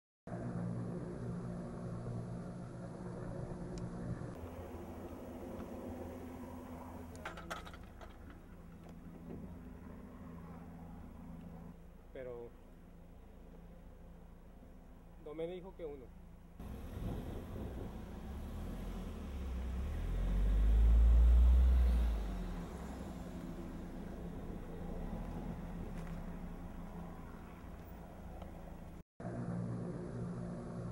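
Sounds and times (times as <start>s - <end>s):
distant helicopter engine and rotor: 0.3s - 18.4s
car passing close by: 16.6s - 29.0s.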